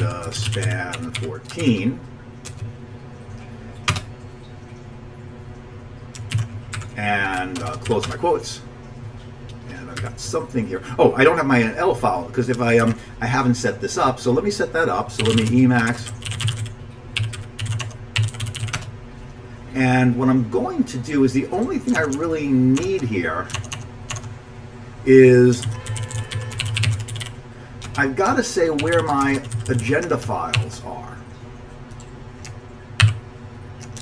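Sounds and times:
typing on computer keyboard: 0.0s - 1.8s, 2.4s - 2.7s, 3.9s - 4.1s, 6.1s - 8.2s, 15.2s - 18.9s, 23.5s - 24.3s, 25.6s - 28.0s, 28.8s - 29.9s, 31.9s - 33.2s, 33.8s - 34.0s.

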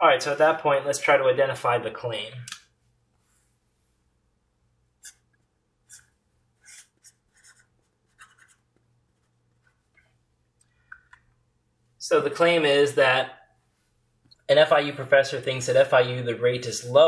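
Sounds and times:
marker writing on paper: 5.0s - 9.8s.

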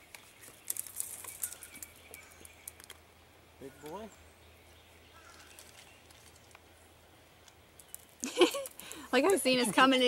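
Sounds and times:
sharp clicks and crackles: 0.0s - 3.0s, 7.4s - 9.5s
faint bird chirps: 3.6s - 6.4s.

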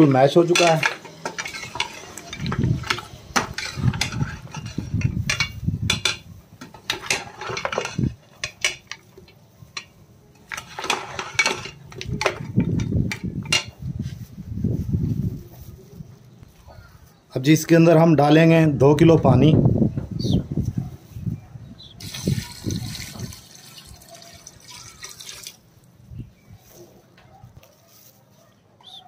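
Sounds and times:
steel ladle scraping pressure cooker: 0.5s - 9.1s, 10.4s - 12.6s.

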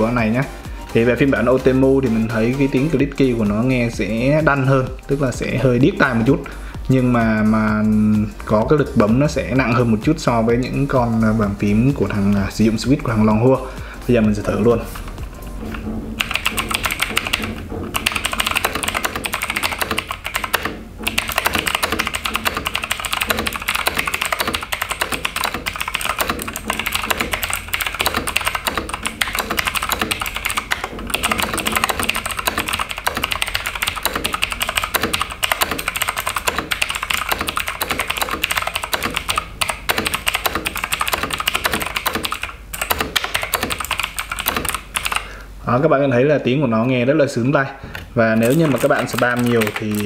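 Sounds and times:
fast mechanical keyboard typing: 11.9s - 45.4s, 48.3s - 50.0s.

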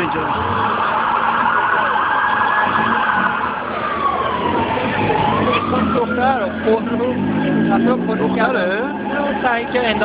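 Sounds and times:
police siren wailing: 0.0s - 10.0s.

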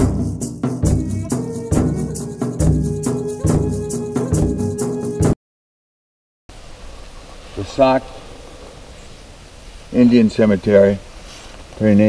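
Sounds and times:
short vocal sound: 0.8s - 4.9s
outdoor background hiss: 6.5s - 12.0s.

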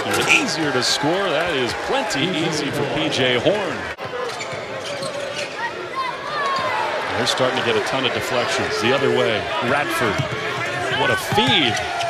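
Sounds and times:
arena crowd noise and voices: 0.0s - 12.0s.

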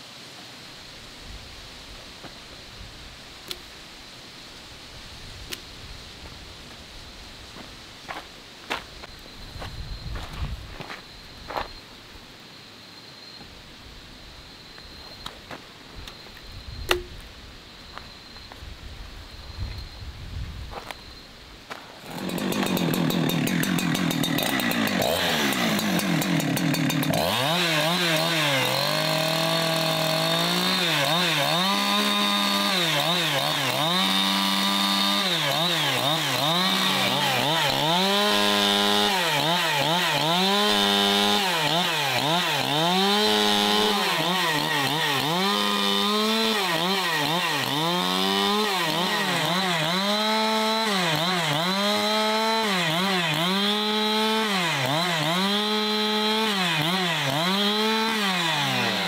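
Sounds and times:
chainsaw cutting log: 16.9s - 17.1s, 21.9s - 59.0s.

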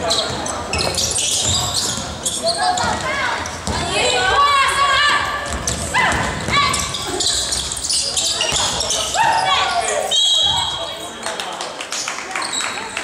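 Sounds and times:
sneakers squeaking on wooden court: 0.0s - 11.2s
players' voices: 0.0s - 13.0s
basketball bouncing: 2.8s - 4.0s, 5.1s - 7.7s.

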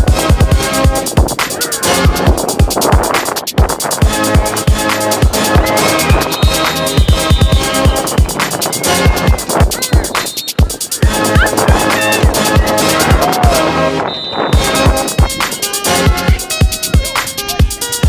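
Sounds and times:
music with deep bass kicks: 0.0s - 18.0s.

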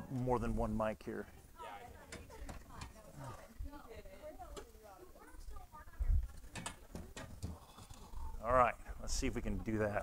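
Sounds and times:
faint talk of people: 0.0s - 10.0s.

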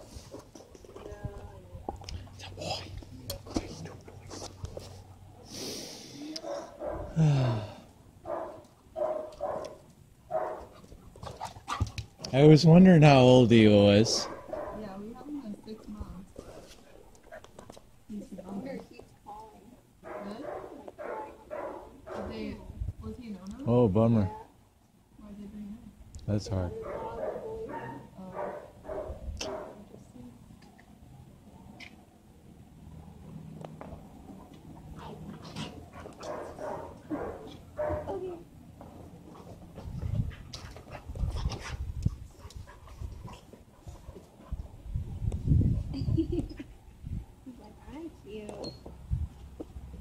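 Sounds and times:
dogs playing and vocalizing: 0.0s - 5.5s, 6.3s - 7.2s, 8.1s - 12.5s, 13.9s - 22.6s, 26.6s - 50.0s.

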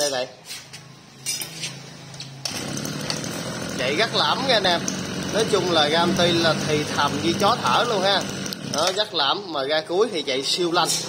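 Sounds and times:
brush-cutter engine: 2.4s - 9.6s.

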